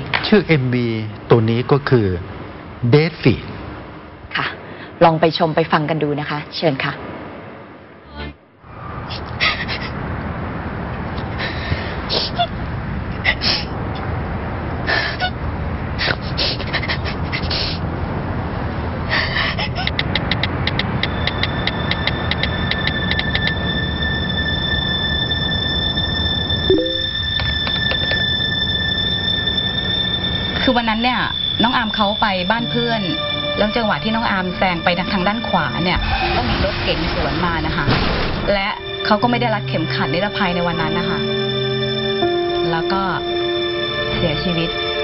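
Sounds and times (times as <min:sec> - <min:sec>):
high electronic beeps: 0:21.3 - 0:35.9
low drone: 0:21.7 - 0:36.2.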